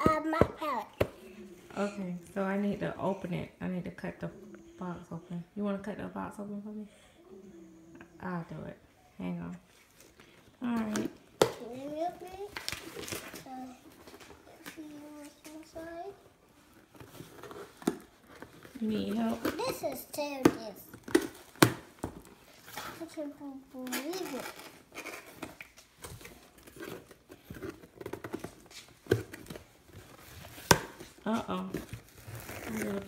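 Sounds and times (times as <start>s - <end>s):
young child's voice: 0.0s - 1.3s, 11.6s - 12.6s, 13.4s - 13.9s, 19.6s - 20.9s, 23.0s - 24.6s
tearing packing tape on cardboard: 23.8s - 25.7s.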